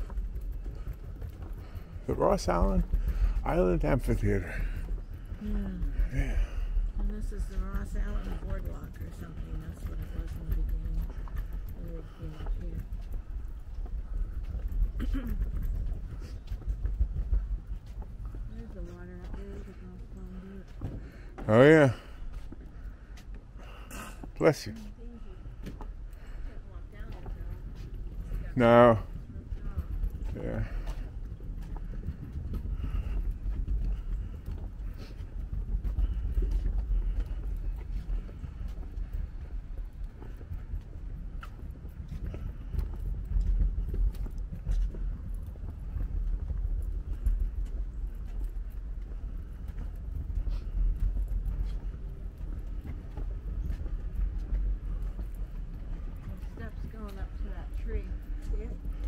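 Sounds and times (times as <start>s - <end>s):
footsteps on wooden boardwalk: 0.0s - 59.0s
low rumble: 0.0s - 59.0s.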